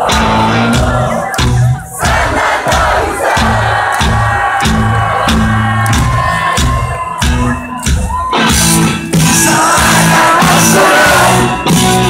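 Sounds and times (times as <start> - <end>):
live rock band playing: 0.0 - 12.0
loud crowd noise: 0.0 - 12.0.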